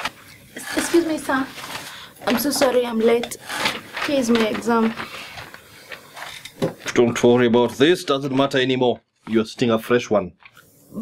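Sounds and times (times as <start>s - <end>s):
paper rustling: 0.0s - 7.1s
person speaking: 0.6s - 5.1s.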